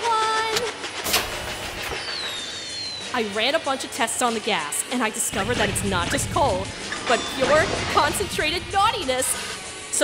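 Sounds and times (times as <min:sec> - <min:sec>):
thin falling whistle: 0:02.0 - 0:03.1.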